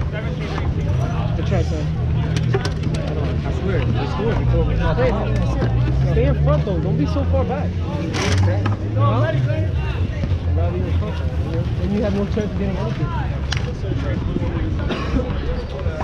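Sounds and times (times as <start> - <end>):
people chatting: 0.0 - 16.0
low rumble: 2.0 - 7.8.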